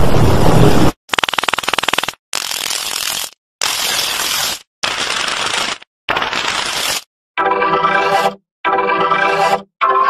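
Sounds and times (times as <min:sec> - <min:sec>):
buzzing stutter of clicks: 0:01.1 - 0:07.0.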